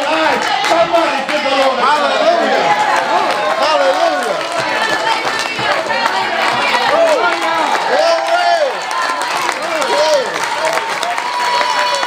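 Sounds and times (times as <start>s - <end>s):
congregation calling out: 0.0s - 12.0s.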